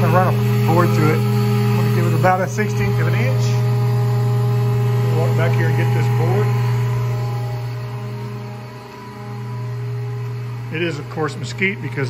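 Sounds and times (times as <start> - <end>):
planer motor humming: 0.0 - 12.0.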